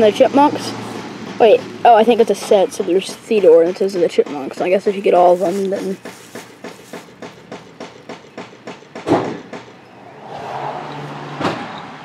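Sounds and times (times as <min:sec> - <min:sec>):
rapid mechanical knocking: 0:00.0 - 0:09.8.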